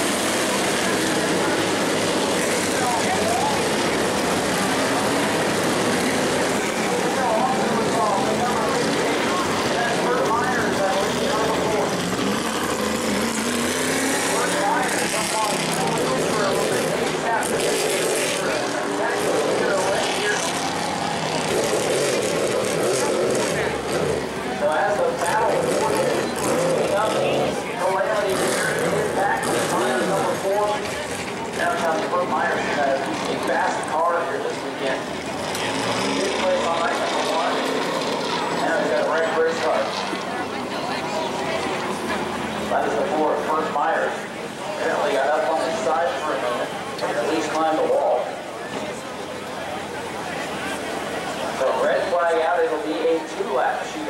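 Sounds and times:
race car engines revving: 0.0 - 54.0
voices: 0.0 - 54.0.

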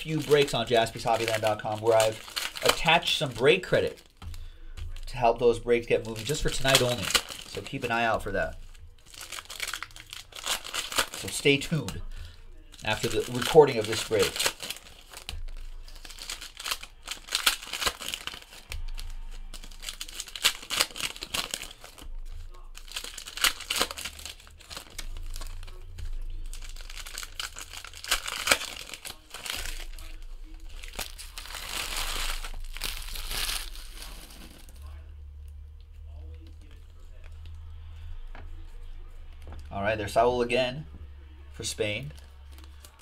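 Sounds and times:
foil wrappers crinkling: 0.0 - 38.8, 41.6 - 43.0.

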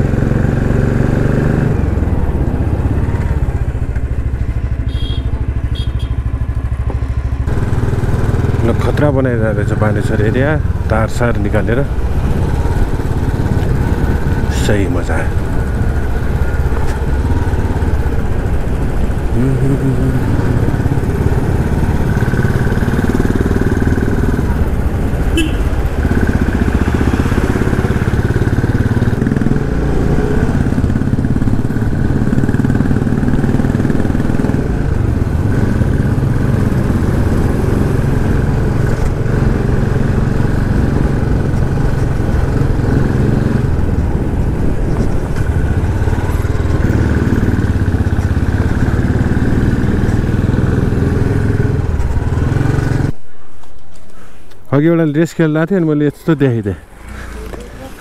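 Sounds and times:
motorcycle engine running: 0.0 - 53.2.

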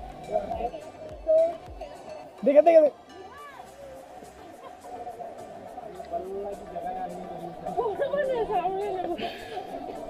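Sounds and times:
chatter of voices: 0.0 - 10.0.

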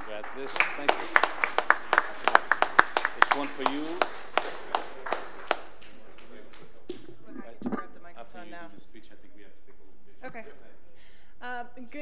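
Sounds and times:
scattered hand claps: 0.0 - 7.2.

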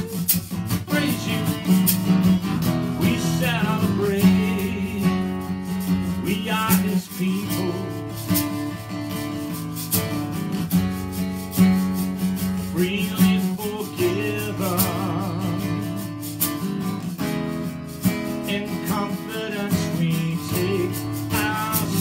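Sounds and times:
man singing: 0.0 - 8.6, 12.6 - 16.2, 18.4 - 22.0
acoustic guitar strummed: 0.0 - 22.0.

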